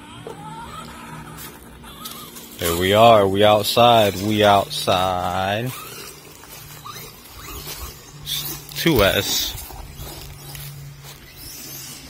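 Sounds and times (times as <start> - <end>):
electric motor whine: 0.0 - 12.0
tyres rustling leaves: 1.2 - 12.0.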